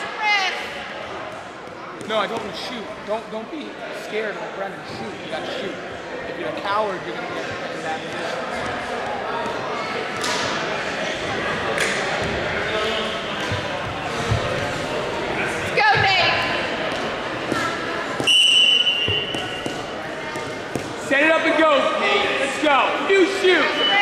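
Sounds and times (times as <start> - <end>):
crowd chatter: 0.0 - 24.0
referee's whistle: 18.2 - 19.7.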